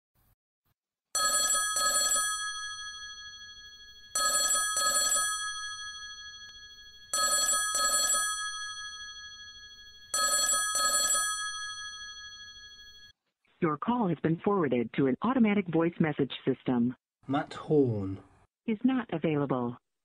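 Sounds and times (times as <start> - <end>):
telephone bell ringing: 1.1 - 13.1.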